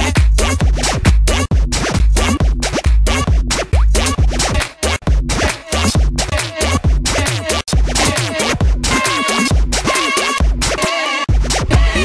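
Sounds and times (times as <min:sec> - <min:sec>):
electro house dance music: 0:00.0 - 0:12.0.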